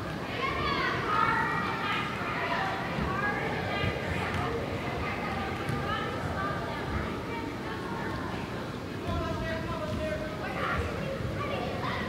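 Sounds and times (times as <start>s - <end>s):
girls calling and shouting: 0.2s - 8.3s.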